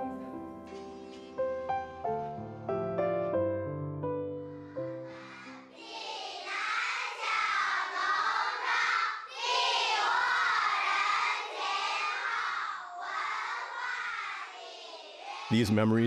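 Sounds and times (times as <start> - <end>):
children singing: 4.6 - 15.6.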